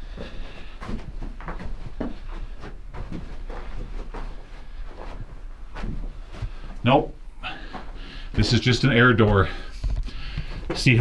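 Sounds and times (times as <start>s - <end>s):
footsteps crunching on rock rubble: 0.1s - 6.9s, 7.6s - 11.0s.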